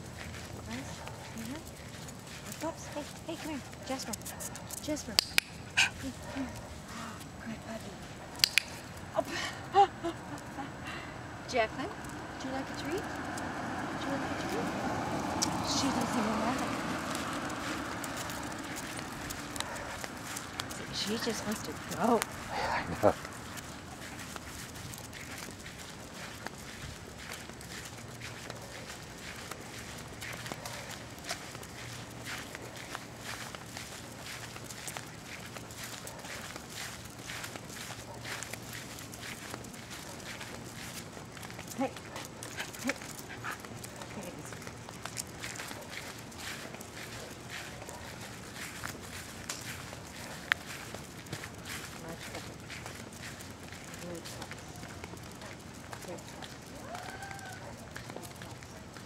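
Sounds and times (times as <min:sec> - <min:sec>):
footsteps on concrete: 0:00.0 - 0:09.1, 0:15.3 - 0:59.0
dog claws clicking on concrete: 0:03.6 - 0:06.7, 0:08.4 - 0:09.0.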